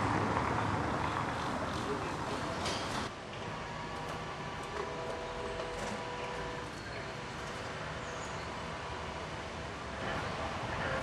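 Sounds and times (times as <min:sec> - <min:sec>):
faint mechanical hum: 0:00.0 - 0:11.0
outdoor background noise: 0:00.0 - 0:11.0.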